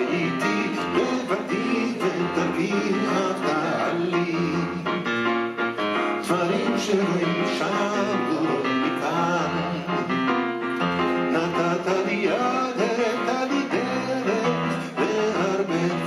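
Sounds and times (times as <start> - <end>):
man singing: 0.0 - 5.0, 6.0 - 10.3, 11.1 - 16.0
grand piano chords: 0.0 - 16.0.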